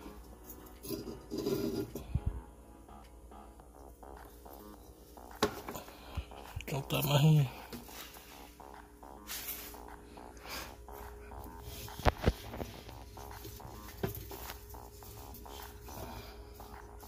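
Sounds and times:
faint background music: 0:00.0 - 0:17.0.

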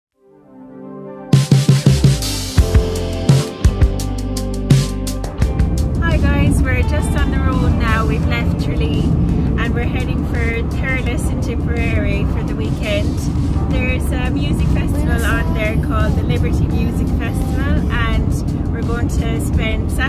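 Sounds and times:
vehicle engine and tyres rumbling: 0:05.3 - 0:20.0
woman talking: 0:06.0 - 0:20.0.

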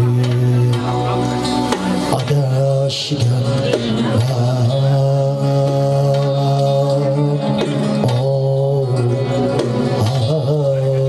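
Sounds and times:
lute: 0:00.0 - 0:11.0.

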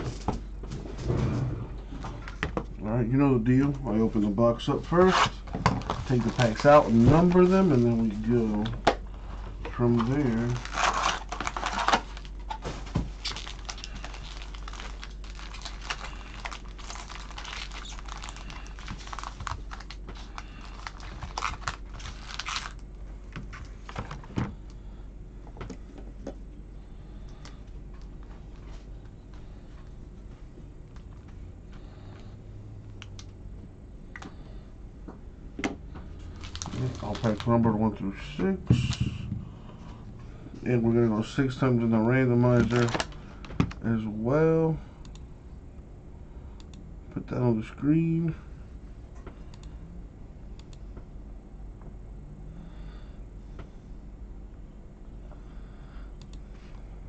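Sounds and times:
foil wrappers crinkling: 0:04.9 - 0:08.8, 0:09.7 - 0:22.9, 0:36.3 - 0:37.8, 0:42.5 - 0:43.7.

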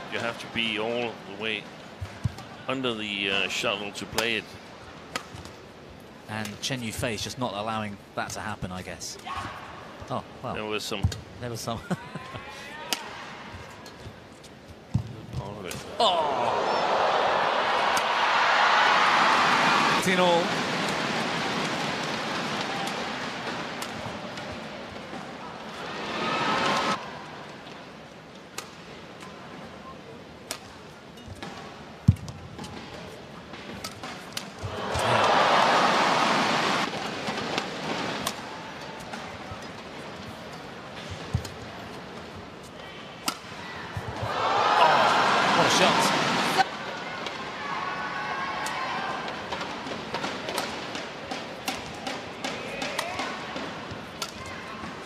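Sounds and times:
crowd cheering and applauding: 0:16.1 - 0:20.1, 0:34.7 - 0:36.9, 0:44.2 - 0:46.6
racket striking shuttlecock: 0:49.6 - 0:54.5.

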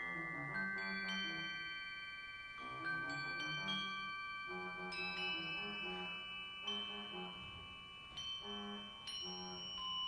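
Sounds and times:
bell-like metallic percussion strikes: 0:00.0 - 0:10.0.

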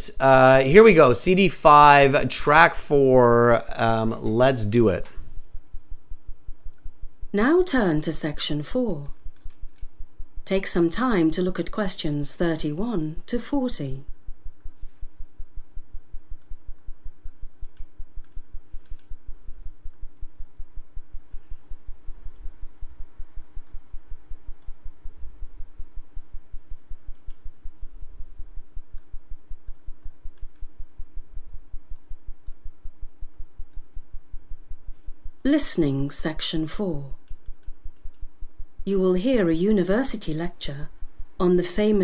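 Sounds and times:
faint steady tones: 0:00.0 - 0:42.0
low rapidly pulsing hum: 0:00.0 - 0:42.0
faint clicks: 0:09.2 - 0:10.0, 0:16.4 - 0:20.6, 0:27.0 - 0:27.5, 0:28.8 - 0:30.7, 0:31.8 - 0:32.7, 0:33.3 - 0:33.9, 0:37.2 - 0:38.3.

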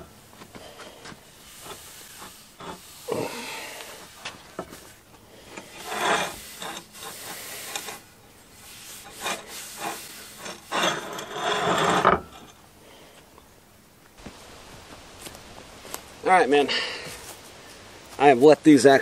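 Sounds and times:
cloth rag rubbing on wood: 0:08.6 - 0:10.5.

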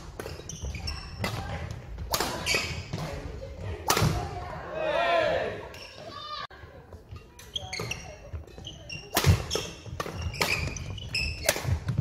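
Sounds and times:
racket hitting shuttlecock: 0:00.0 - 0:03.2, 0:03.8 - 0:04.4, 0:07.9 - 0:12.0
shoes squeaking on wooden floor: 0:00.0 - 0:03.5, 0:05.7 - 0:12.0.

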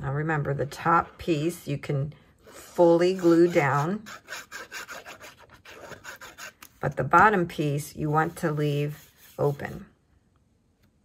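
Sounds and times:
glue bottle tip scratching cardstock: 0:03.1 - 0:06.8.

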